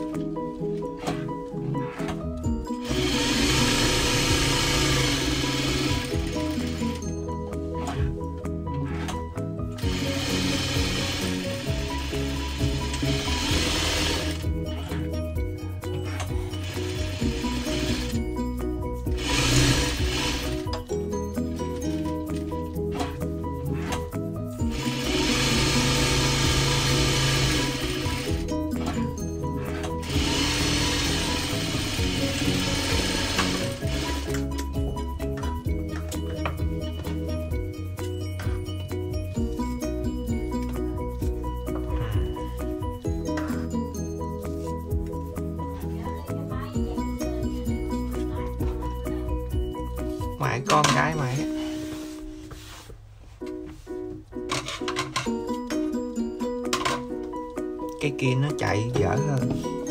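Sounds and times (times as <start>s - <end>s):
sewing machine stitching: 2.8s - 7.0s, 9.8s - 14.4s, 19.2s - 20.6s, 24.7s - 28.5s, 29.8s - 34.4s.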